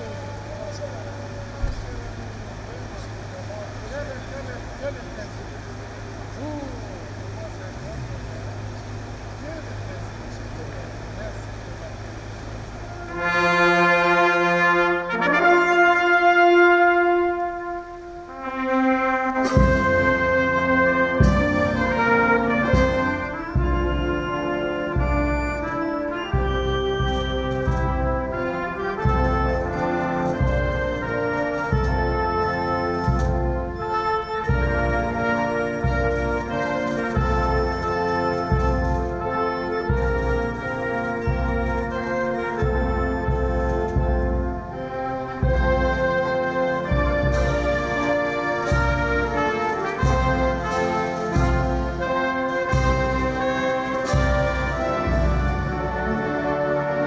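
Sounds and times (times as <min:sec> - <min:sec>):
military brass band playing: 0:00.0 - 0:57.0
steady low hum: 0:00.0 - 0:57.0.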